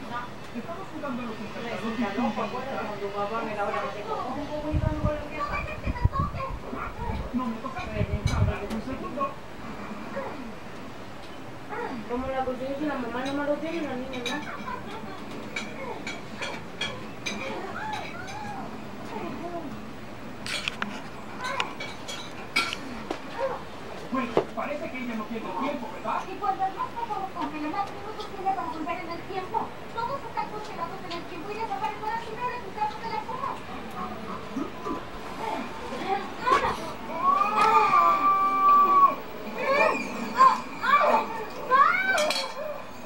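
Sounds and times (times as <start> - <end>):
young child calling and babbling: 5.4 - 7.2, 17.4 - 18.7, 21.4 - 21.8, 36.4 - 42.9.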